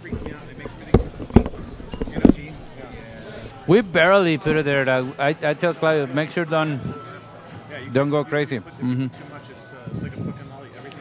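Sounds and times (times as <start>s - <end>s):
sharp knocks: 0.0s - 3.6s
background voices: 0.0s - 4.9s.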